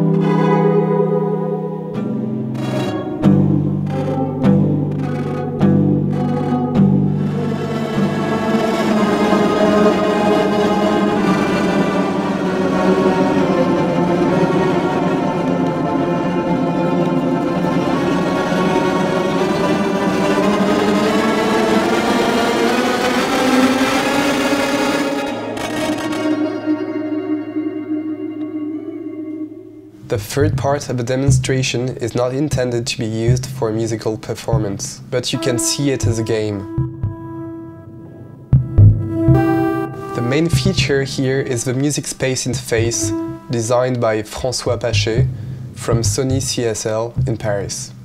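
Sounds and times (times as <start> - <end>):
electric guitar notes: 0.0 - 48.0.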